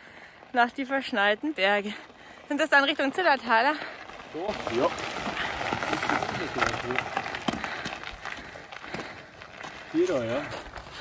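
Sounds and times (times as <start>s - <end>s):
bike tyres crunching over gravel: 0.0s - 11.0s.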